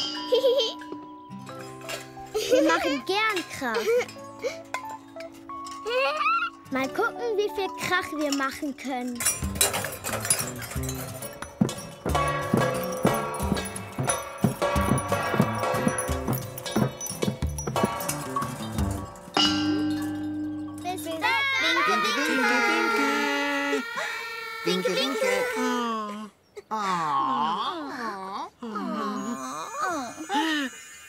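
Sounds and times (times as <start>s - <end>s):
metal pots clanging: 0.0s - 21.4s
background music: 0.0s - 25.8s.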